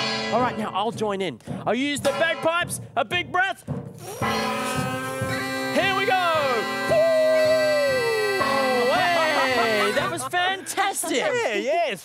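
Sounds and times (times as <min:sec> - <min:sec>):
bass drum marching beat: 0:00.0 - 0:10.8
bagpipes playing: 0:04.2 - 0:10.3.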